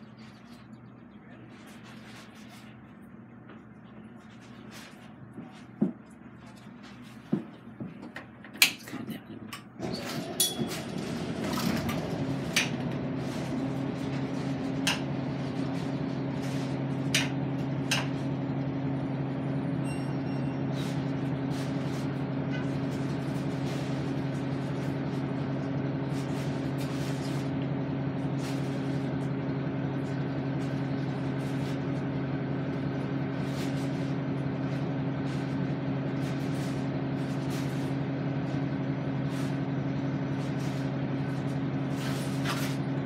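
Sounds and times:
engine idling low hum: 0.0s - 8.4s, 9.6s - 43.0s.

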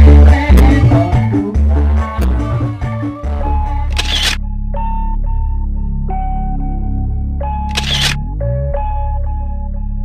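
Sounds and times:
music: 0.0s - 10.0s
sparse music over low drone: 2.2s - 10.0s
camera shutter click: 3.9s - 4.4s, 7.7s - 8.2s.

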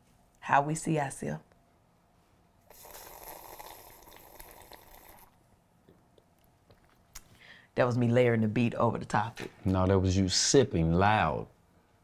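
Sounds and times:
person slurping from a mug: 2.7s - 5.4s.

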